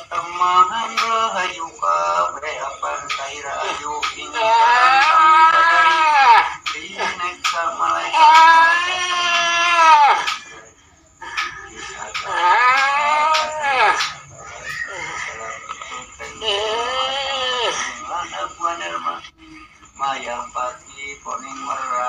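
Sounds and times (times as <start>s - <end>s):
person wailing: 3.6s - 7.2s, 7.8s - 10.4s, 11.4s - 15.2s.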